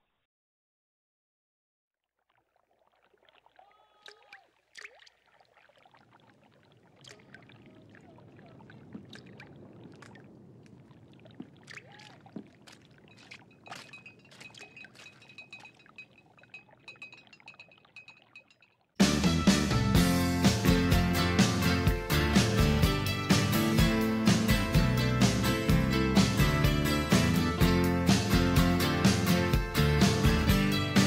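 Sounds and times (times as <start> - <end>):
water trickling: 2.0 - 19.0
small clicks and drips: 2.1 - 19.0.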